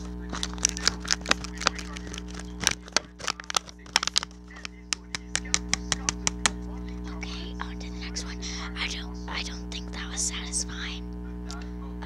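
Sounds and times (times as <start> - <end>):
sharp clicks and taps: 0.0 - 6.6
steady low hum: 0.0 - 12.0.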